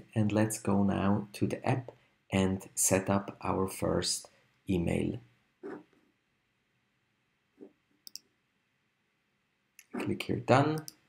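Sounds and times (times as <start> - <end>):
computer mouse clicks: 8.0 - 8.3, 10.7 - 11.0.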